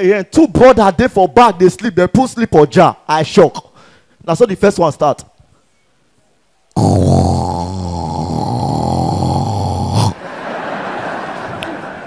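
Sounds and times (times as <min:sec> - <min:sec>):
man imitating a snore: 0:06.8 - 0:10.2
audience laughter: 0:10.2 - 0:12.0.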